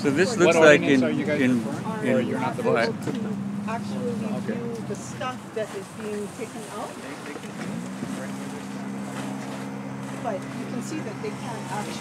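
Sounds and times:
faint voices: 0:00.0 - 0:12.0
motor engine running: 0:00.0 - 0:12.0.

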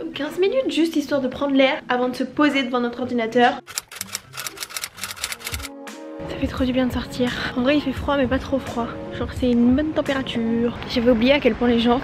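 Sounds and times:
faint background music: 0:00.0 - 0:12.0
typewriter keystroke clacks: 0:03.7 - 0:05.7.

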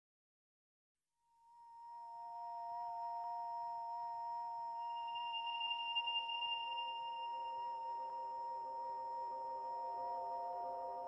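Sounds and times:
higher ringing tone: 0:04.8 - 0:08.4
sustained ringing tones: 0:04.8 - 0:11.0.

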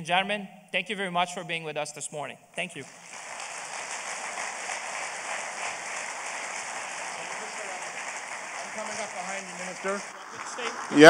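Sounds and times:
audience applauding: 0:02.8 - 0:11.0.

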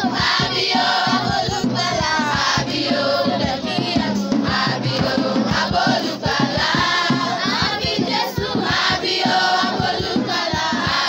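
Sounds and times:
children's choir singing a carol: 0:00.0 - 0:11.0.

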